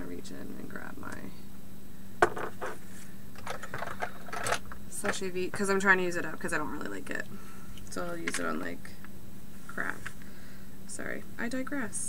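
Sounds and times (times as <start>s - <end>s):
small hard items clattering: 3.4s - 5.2s.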